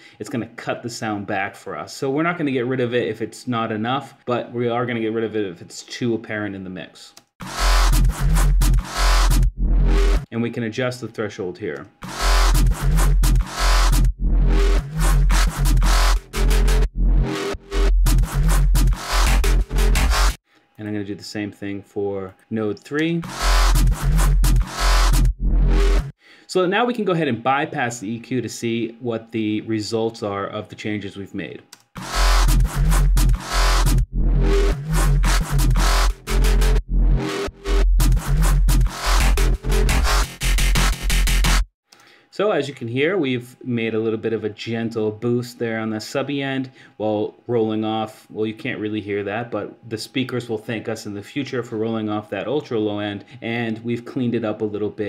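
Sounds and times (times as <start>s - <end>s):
electronic bass line: 7.4s - 10.3s, 12.0s - 20.4s, 23.2s - 26.1s, 32.0s - 41.7s.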